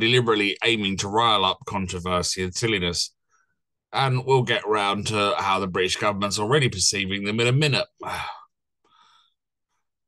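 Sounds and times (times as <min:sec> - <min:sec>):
man sighing: 0:08.0 - 0:09.2.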